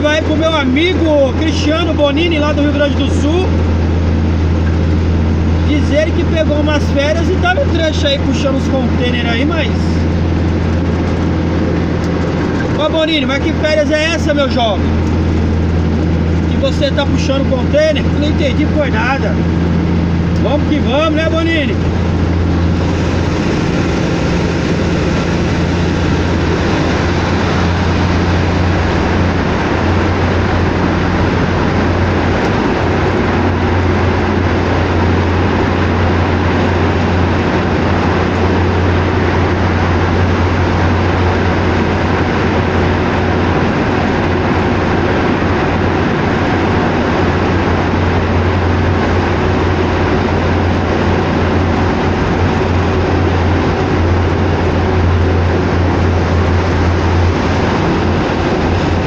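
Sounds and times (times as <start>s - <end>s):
truck engine and road noise: 0.0s - 59.0s.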